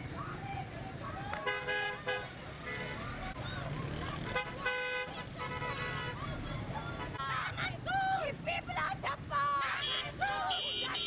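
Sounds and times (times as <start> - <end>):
crowd voices: 0.0 - 11.0
street noise: 0.0 - 11.0
vehicle horn honking: 1.4 - 3.0, 4.2 - 6.2, 9.8 - 11.0.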